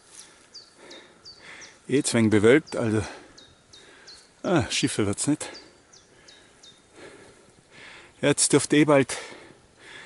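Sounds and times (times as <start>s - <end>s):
quiet woodland ambience: 0.0s - 10.0s
high bird chirps: 2.6s - 4.4s.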